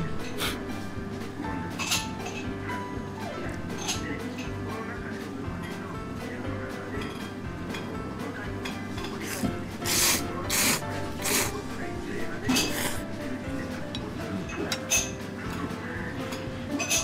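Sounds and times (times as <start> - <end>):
background music: 0.0 - 17.0
person slurping noodles: 9.2 - 11.6, 12.5 - 13.1.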